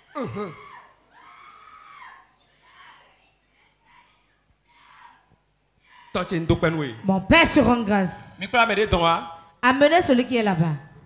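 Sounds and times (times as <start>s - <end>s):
person wailing cry: 0.1s - 0.8s.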